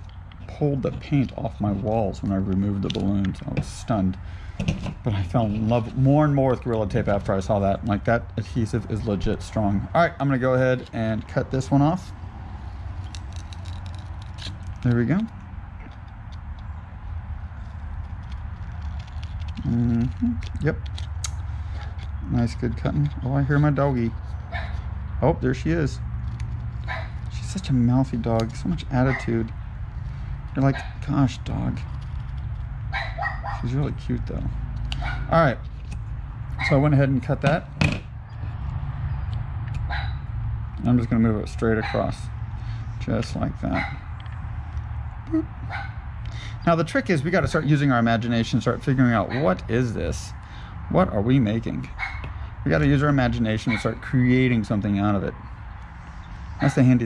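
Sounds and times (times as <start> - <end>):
low background hum: 0.0 - 57.0
scissors cutting paper: 17.7 - 21.9
dog barking: 24.5 - 24.8, 26.9 - 27.2, 29.1 - 29.3, 32.9 - 33.7, 35.0 - 35.3, 39.9 - 40.2, 41.8 - 42.1, 43.7 - 44.0, 53.7 - 53.9.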